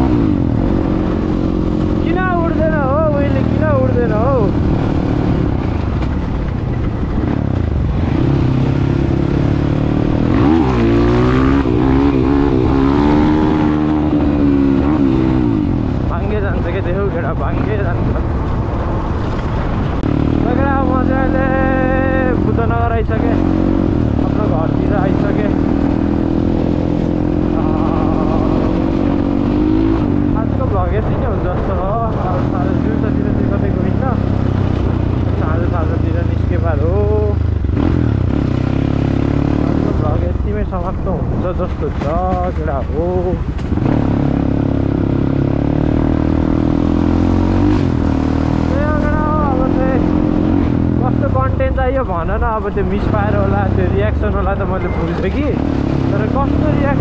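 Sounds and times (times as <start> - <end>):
dirt bike engine revving: 0.0 - 17.6, 19.1 - 57.0.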